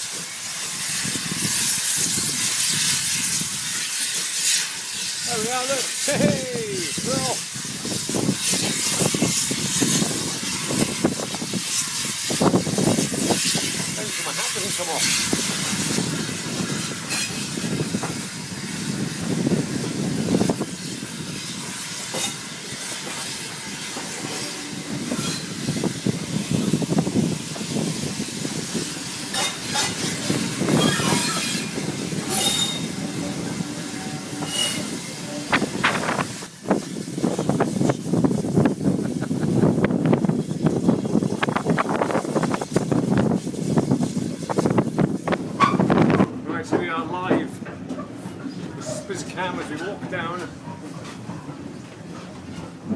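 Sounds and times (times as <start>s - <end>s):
rail joint clicks and clatter: 0.0s - 5.2s, 7.5s - 19.2s, 20.7s - 52.9s
train wheels rumbling on rail: 0.0s - 52.9s
high wheel squeals: 30.7s - 31.7s, 32.3s - 33.0s, 34.1s - 35.0s.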